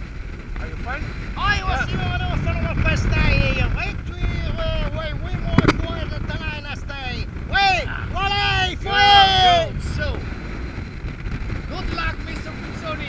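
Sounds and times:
wind buffeting microphone: 0:00.0 - 0:13.0
voices talking: 0:00.6 - 0:10.3, 0:11.6 - 0:13.0.

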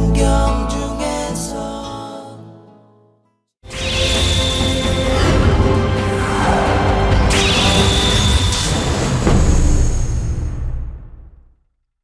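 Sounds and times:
tv theme music: 0:03.6 - 0:11.5
hit sound effect: 0:03.6 - 0:11.6
whoosh sound effect: 0:03.7 - 0:10.4.

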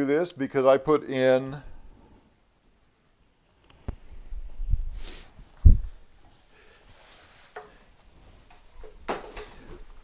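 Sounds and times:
fabric rustle: 0:04.0 - 0:10.0.

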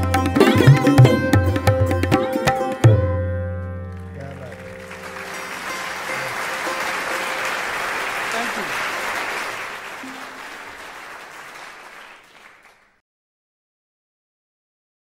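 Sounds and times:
sarod note ringing: 0:00.0 - 0:07.4
audience applause: 0:03.9 - 0:13.0.

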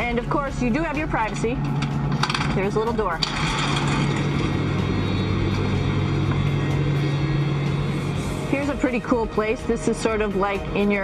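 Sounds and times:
ventilation fans humming: 0:00.0 - 0:11.0.

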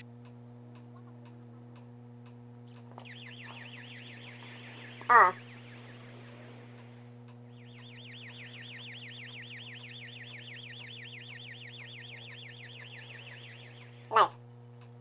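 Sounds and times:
low electrical hum: 0:00.0 - 0:15.0
electronic siren warbling: 0:03.0 - 0:14.3.

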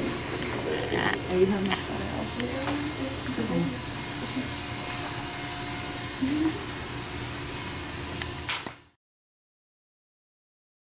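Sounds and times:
steady mechanical hum: 0:00.0 - 0:09.0.

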